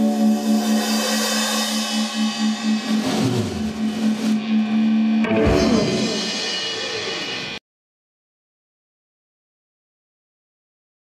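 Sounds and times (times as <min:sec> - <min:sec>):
drum cymbals crashing: 0:00.0 - 0:07.6
blues band playing: 0:02.2 - 0:07.6.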